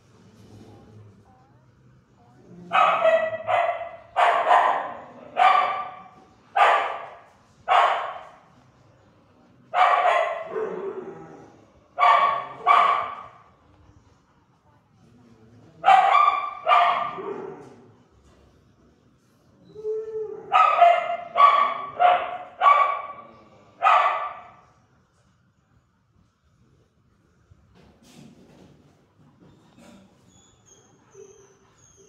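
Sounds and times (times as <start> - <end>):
dog barking with echo: 2.7 - 7.1, 7.7 - 8.2, 9.8 - 10.9, 12.0 - 13.4, 15.8 - 17.5, 20.5 - 23.2, 23.8 - 24.6.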